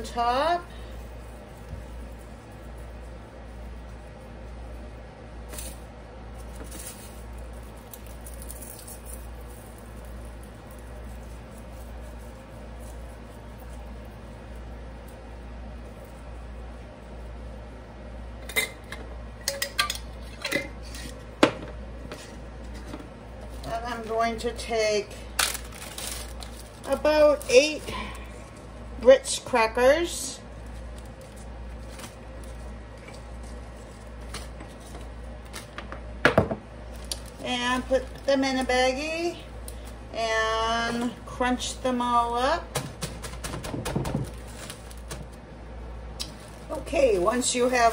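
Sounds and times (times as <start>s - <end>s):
low steady hum: 0.0s - 47.9s
package rustle: 5.4s - 14.0s, 25.2s - 28.3s, 30.6s - 35.7s, 36.8s - 38.3s, 43.1s - 45.4s, 46.2s - 46.9s.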